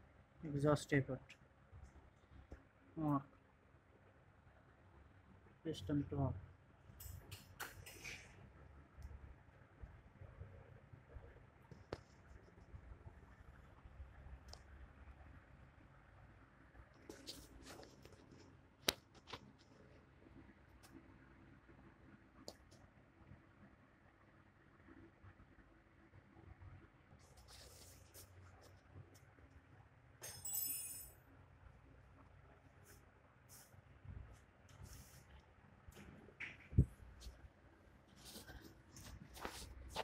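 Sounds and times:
faint shuffling: 38.0 - 40.0.

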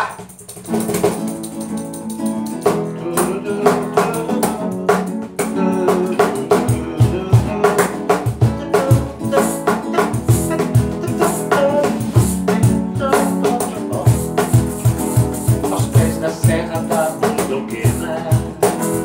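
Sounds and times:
acoustic guitar strumming: 0.0 - 19.0
cajon bass strokes: 0.0 - 19.0.

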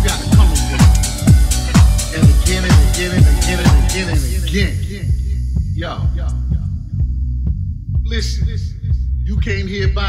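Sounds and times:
house music: 0.0 - 10.0.

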